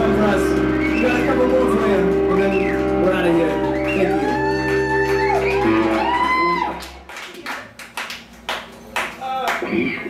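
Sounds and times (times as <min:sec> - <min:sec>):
rock band sustained chord: 0:00.0 - 0:07.1.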